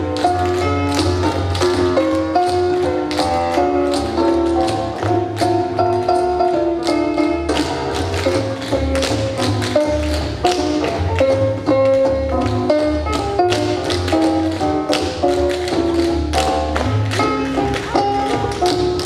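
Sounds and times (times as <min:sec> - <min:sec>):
music with bass line: 0:00.0 - 0:19.0
tap shoes on hard floor: 0:00.2 - 0:19.0.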